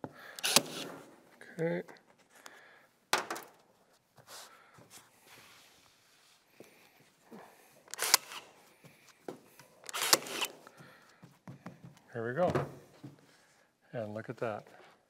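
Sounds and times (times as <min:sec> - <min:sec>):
staple gun firing: 0:00.4 - 0:01.0, 0:07.9 - 0:08.4, 0:09.9 - 0:10.5.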